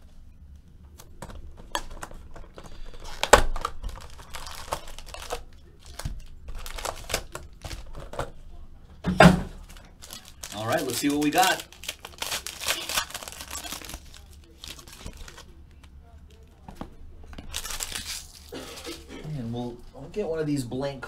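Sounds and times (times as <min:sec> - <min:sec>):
plastic wrap crinkling: 0:01.0 - 0:08.4, 0:09.5 - 0:19.2.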